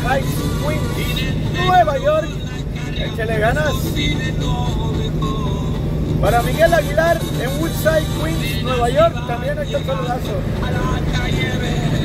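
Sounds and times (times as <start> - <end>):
faint music: 0.0 - 12.0
road noise inside cab: 0.0 - 12.0
truck engine droning: 0.0 - 12.0.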